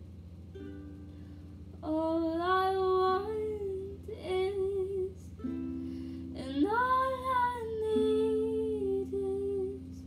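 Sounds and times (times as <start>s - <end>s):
ukulele: 0.4s - 10.0s
woman singing long held note: 6.3s - 10.0s.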